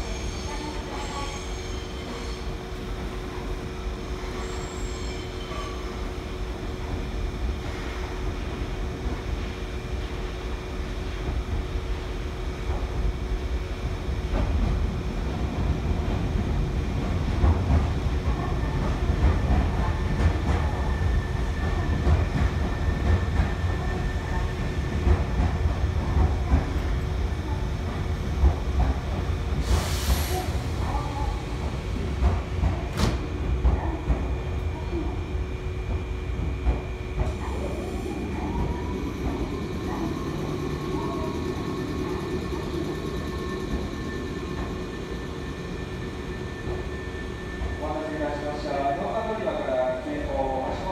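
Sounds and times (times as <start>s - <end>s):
train wheels rumbling and clacking: 0.0s - 48.7s
train whine: 18.4s - 50.9s.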